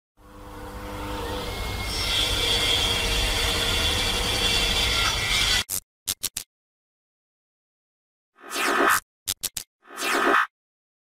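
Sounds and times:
synthetic grinding noise: 8.4 - 10.5.

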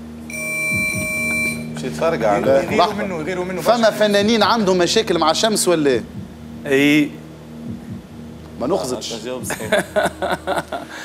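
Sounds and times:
steady electronic beep: 0.3 - 1.8.

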